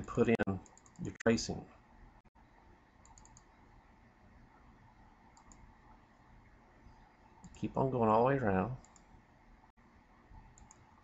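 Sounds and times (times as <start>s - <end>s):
computer mouse clicks: 0.0s - 1.2s, 3.0s - 3.6s, 5.3s - 5.7s, 7.4s - 7.7s, 8.8s - 9.1s, 10.4s - 11.0s.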